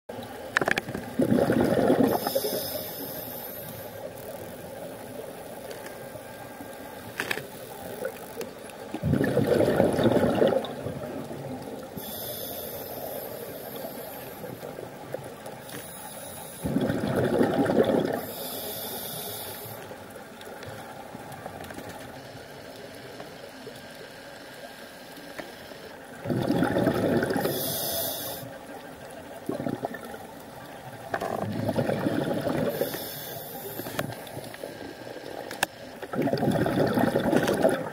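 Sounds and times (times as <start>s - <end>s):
bubbling exhalations underwater: 1.1s - 2.6s, 9.0s - 11.3s, 16.6s - 18.3s, 26.2s - 27.7s, 29.4s - 30.3s, 31.1s - 32.9s, 36.1s - 37.9s
regulator inhalation hiss: 2.1s - 4.3s, 12.0s - 14.7s, 15.6s - 16.7s, 18.2s - 20.0s, 27.4s - 28.6s, 32.7s - 35.2s.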